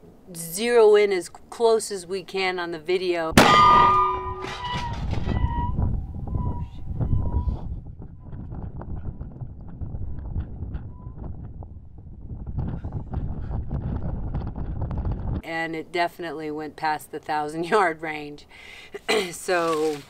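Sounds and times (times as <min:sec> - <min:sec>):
wind buffeting microphone: 0:03.3 - 0:15.5
metallic ringing: 0:03.4 - 0:06.8.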